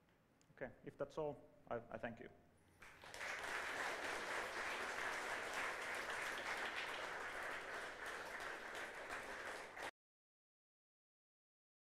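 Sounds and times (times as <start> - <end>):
audience applauding: 2.8 - 9.9.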